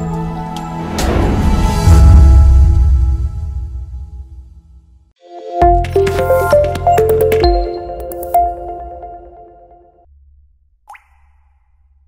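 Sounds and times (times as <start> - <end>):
upward-sweeping pop effect: 5.4 - 9.9.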